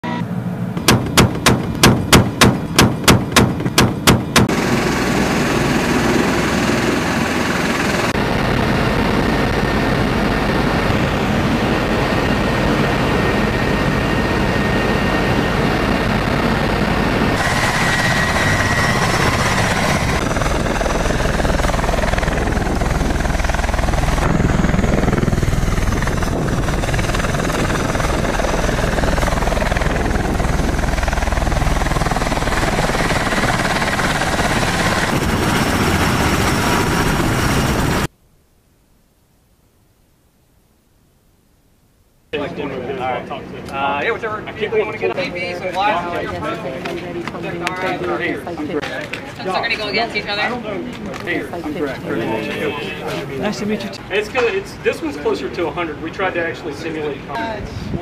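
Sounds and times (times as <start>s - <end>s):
aircraft engines and rotors running: 0.0s - 38.1s, 42.4s - 58.0s.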